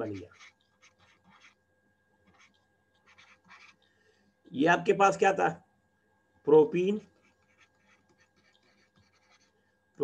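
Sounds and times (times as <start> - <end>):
stylus scratching on tablet screen: 0.0 - 3.9, 6.8 - 9.8.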